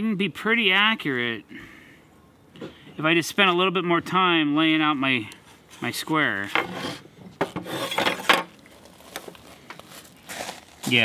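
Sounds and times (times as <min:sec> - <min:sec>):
metal square scraping on wood: 0:05.4 - 0:08.5.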